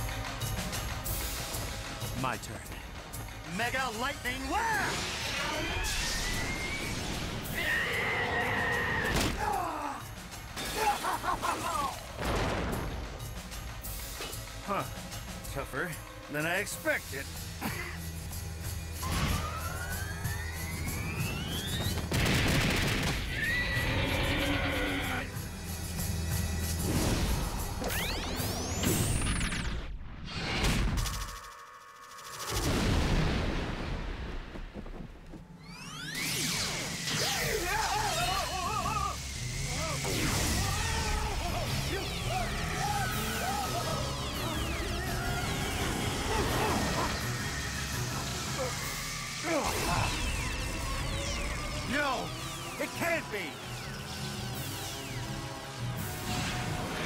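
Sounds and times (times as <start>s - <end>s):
dramatic music: 0.0s - 29.4s, 35.5s - 57.0s
monster growling: 45.2s - 50.5s.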